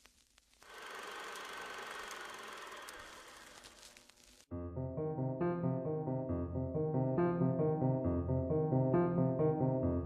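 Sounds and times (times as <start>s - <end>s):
film projector rattling clatter: 0.7s - 3.7s.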